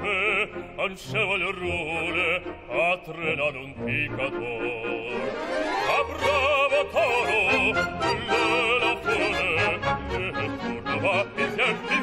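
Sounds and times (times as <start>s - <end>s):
opera singer with vibrato: 0.0s - 12.0s
symphony orchestra: 0.0s - 12.0s.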